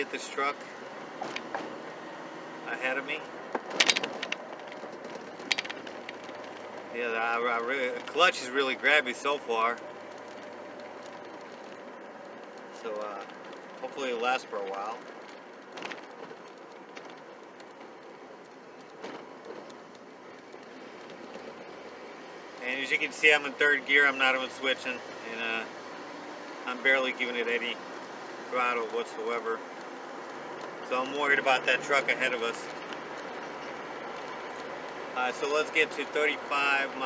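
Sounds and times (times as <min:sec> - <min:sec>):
engine and road hum: 0:00.0 - 0:37.0.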